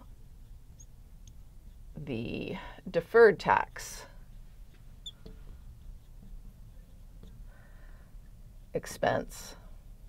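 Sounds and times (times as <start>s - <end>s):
marker squeak: 0.7s - 1.0s, 5.0s - 6.1s
marker tapping and scratching on glass: 4.7s - 7.4s.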